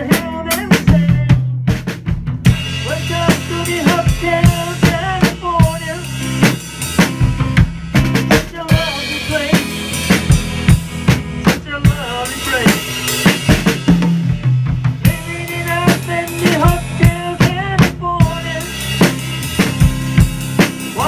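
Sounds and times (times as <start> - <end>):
drum kit beat: 0.0 - 21.0
live pop-rock band: 0.0 - 21.0.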